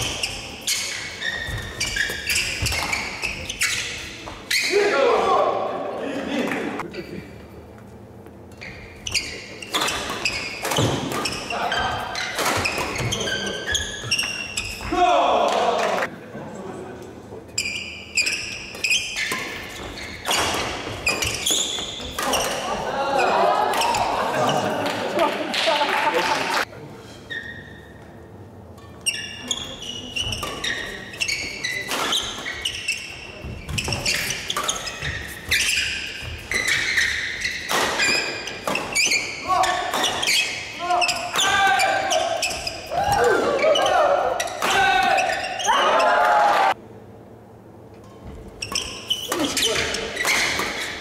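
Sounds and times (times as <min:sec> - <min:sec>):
shoe soles squeaking: 0:00.0 - 0:04.8, 0:08.4 - 0:14.9, 0:17.6 - 0:22.7, 0:27.3 - 0:28.1, 0:28.9 - 0:46.2, 0:48.5 - 0:51.0
people shouting and exclaiming: 0:22.3 - 0:26.6, 0:42.9 - 0:46.8.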